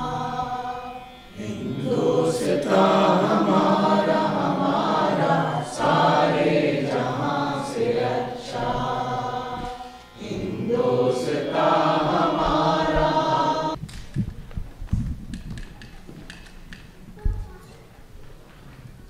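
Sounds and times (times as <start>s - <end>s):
person singing slowly: 0.0s - 13.8s.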